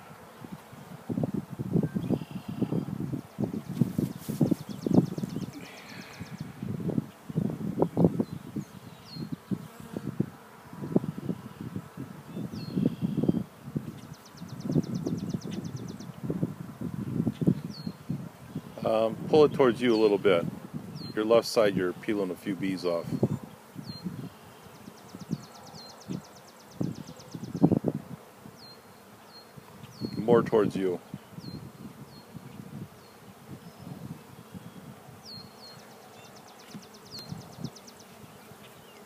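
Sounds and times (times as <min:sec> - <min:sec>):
honeybees buzzing: 0:00.0 - 0:39.0.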